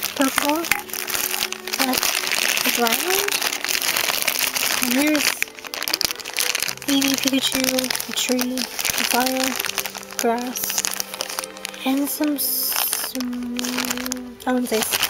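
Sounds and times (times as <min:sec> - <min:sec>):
plastic packaging crinkling: 0:00.0 - 0:15.0.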